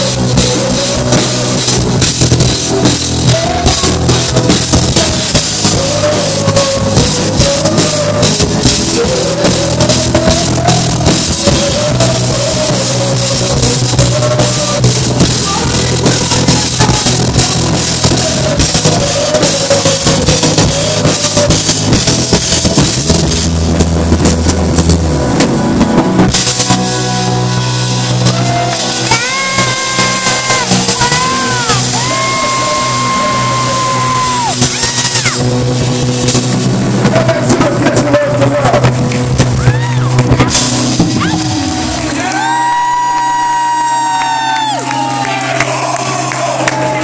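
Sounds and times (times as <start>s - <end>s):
live rock band playing: 0.0s - 47.0s
singer holding long notes: 0.0s - 47.0s
crowd shouting and whooping: 27.8s - 35.6s, 39.5s - 40.4s, 41.0s - 47.0s.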